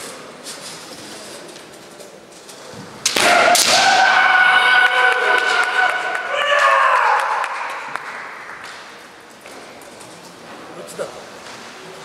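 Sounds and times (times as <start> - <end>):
bamboo sword strikes cracking: 3.0 - 4.0
long shout: 3.2 - 8.0.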